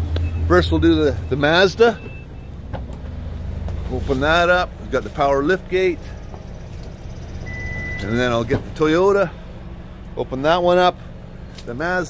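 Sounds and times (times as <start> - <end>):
short high beep: 7.4 - 8.1.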